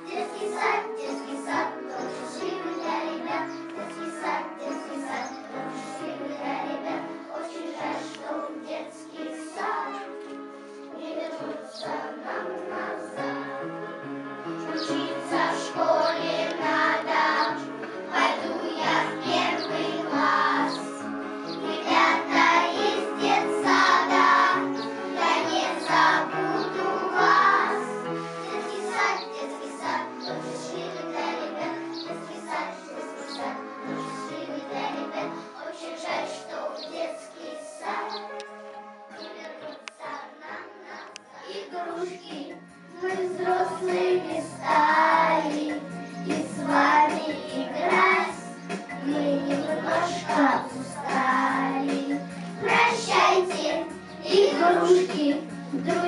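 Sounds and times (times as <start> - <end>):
group of voices singing: 0.0 - 10.2, 10.9 - 38.5, 39.1 - 56.0
instrumental music: 0.0 - 56.0.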